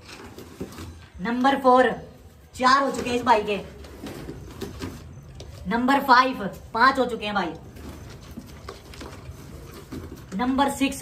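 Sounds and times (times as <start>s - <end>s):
pigeons shifting in a box: 7.5s - 11.0s.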